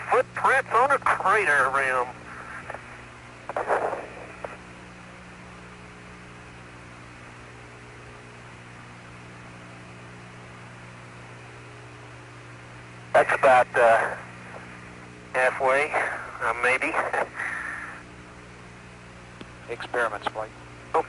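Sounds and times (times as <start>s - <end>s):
radio static hiss: 0.0s - 5.5s, 13.0s - 21.0s
low even hum: 0.0s - 21.0s.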